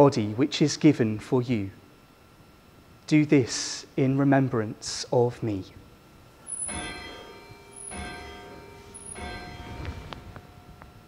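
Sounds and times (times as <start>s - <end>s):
bell ringing: 6.4s - 10.8s.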